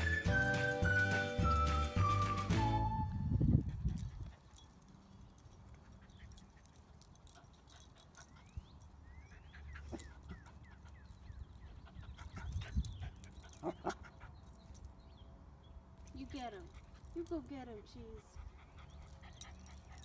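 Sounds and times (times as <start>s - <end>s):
puppy whimpering and yipping: 8.0s - 14.4s.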